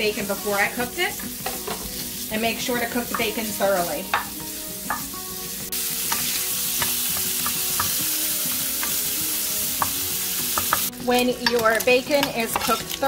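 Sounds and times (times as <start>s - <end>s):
bacon sizzling in a frying pan: 0.0s - 13.0s
wooden spoon tapping: 4.9s - 5.1s, 10.6s - 12.9s.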